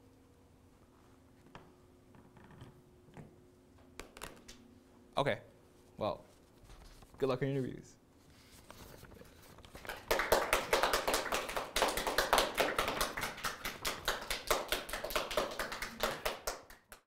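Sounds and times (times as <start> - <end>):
small audience applauding: 9.7 - 17.0.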